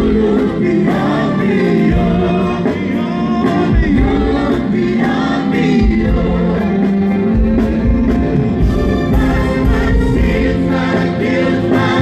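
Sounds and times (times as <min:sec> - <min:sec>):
electronic keyboard: 0:00.0 - 0:12.0
singers in harmony: 0:00.0 - 0:12.0.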